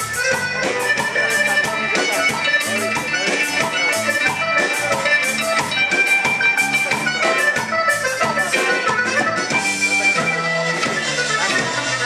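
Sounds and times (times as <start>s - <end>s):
accordion band playing dance music: 0.0s - 12.0s.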